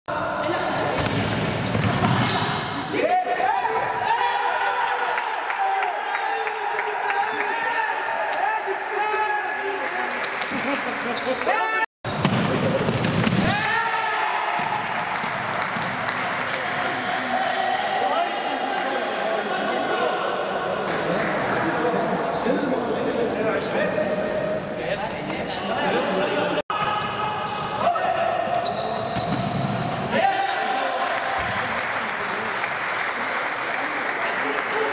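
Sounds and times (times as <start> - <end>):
echoing hall noise: 0.1 - 34.9
ball struck and bouncing on wood: 12.2 - 13.5.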